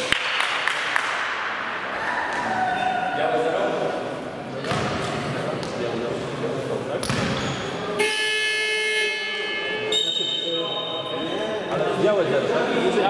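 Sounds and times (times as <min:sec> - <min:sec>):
basketball bouncing on court: 0:04.6 - 0:05.8, 0:07.0 - 0:07.6
basketball buzzer: 0:08.0 - 0:11.3.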